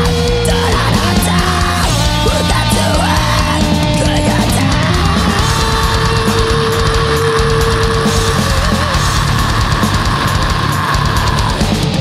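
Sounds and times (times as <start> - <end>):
instrumental heavy metal: 0.0 - 12.0.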